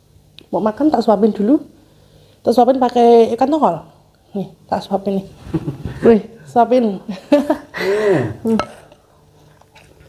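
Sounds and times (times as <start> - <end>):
faint chewing: 8.8 - 10.0.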